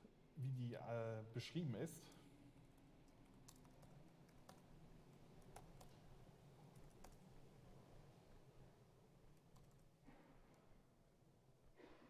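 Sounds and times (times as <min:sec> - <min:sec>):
faint laptop keystrokes: 0:02.1 - 0:06.1, 0:06.7 - 0:07.3, 0:09.3 - 0:09.9.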